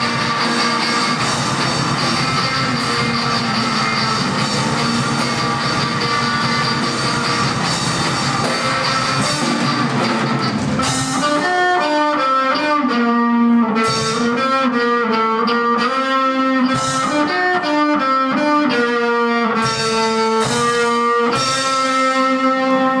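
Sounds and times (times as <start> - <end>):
amplified electric guitar riff: 0.0 - 23.0.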